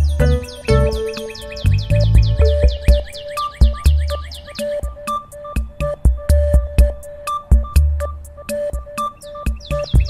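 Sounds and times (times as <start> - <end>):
high falling chirps: 0.0 - 5.4
background music with bass beat: 0.0 - 10.0.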